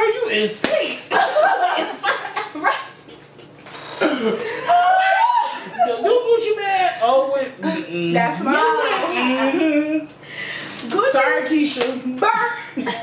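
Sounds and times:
sharp slap: 0:00.6 - 0:01.0
women laughing and exclaiming: 0:01.1 - 0:03.5, 0:04.4 - 0:06.8, 0:08.4 - 0:10.1.

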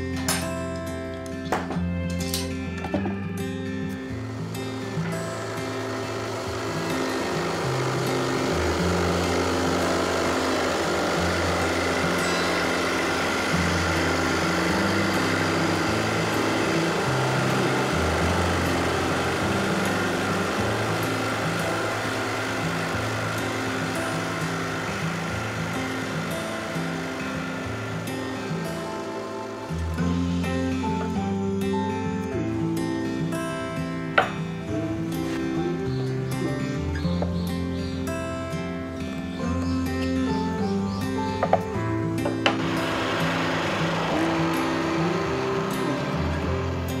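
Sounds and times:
acoustic guitar music: 0:00.0 - 0:47.0
drill press boring into wood: 0:04.0 - 0:31.2, 0:42.2 - 0:47.0.

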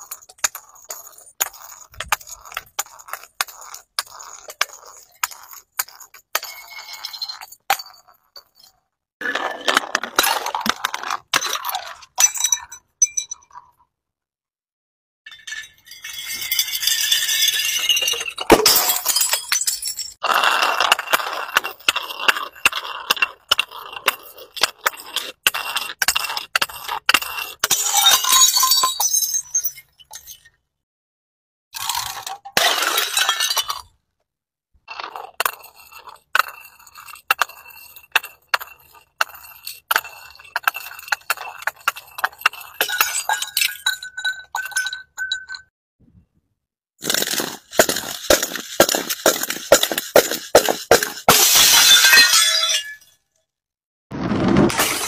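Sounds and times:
glass jars clinking on concrete steps: 0:00.0 - 0:13.8, 0:15.3 - 0:20.2, 0:20.9 - 0:30.6, 0:31.8 - 0:33.9, 0:34.9 - 0:45.7, 0:47.1 - 0:53.2
glass shattering: 0:15.3 - 0:20.2, 0:27.7 - 0:30.5, 0:47.0 - 0:53.2, 0:54.6 - 0:55.0
glass smashing and beads scattering: 0:15.3 - 0:20.2, 0:27.6 - 0:30.1, 0:47.0 - 0:53.2, 0:54.7 - 0:55.0
plastic bricks spilling: 0:47.0 - 0:52.2, 0:54.1 - 0:55.0.

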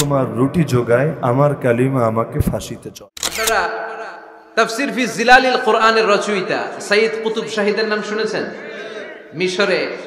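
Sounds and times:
man preaching: 0:00.0 - 0:10.0
camera shutter click: 0:03.2 - 0:03.7.

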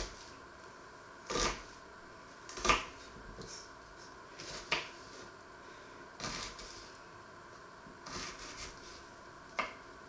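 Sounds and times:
knife cutting onion: 0:01.3 - 0:01.7, 0:02.5 - 0:03.7, 0:04.3 - 0:05.2, 0:06.2 - 0:06.9, 0:08.0 - 0:09.8.

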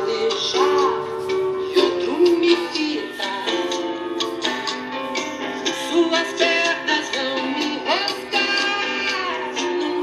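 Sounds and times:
person singing: 0:00.0 - 0:04.7, 0:05.6 - 0:10.0
song from vinyl record: 0:00.0 - 0:10.0.

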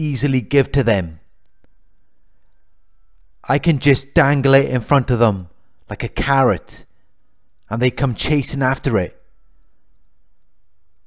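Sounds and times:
man narrating: 0:00.0 - 0:01.3, 0:03.4 - 0:06.9, 0:07.7 - 0:09.2
faint background hiss: 0:00.0 - 0:11.0
faint clicks: 0:01.3 - 0:03.4, 0:09.6 - 0:11.0.

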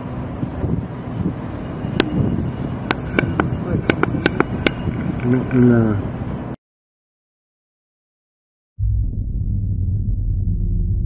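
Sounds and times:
steady low rumble: 0:08.8 - 0:11.0.

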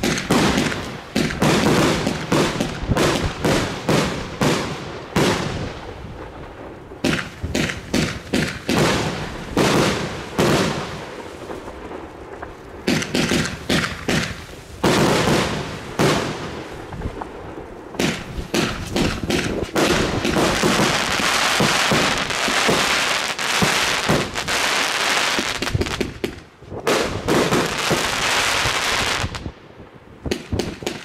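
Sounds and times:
firework stars crackling: 0:00.0 - 0:31.0.

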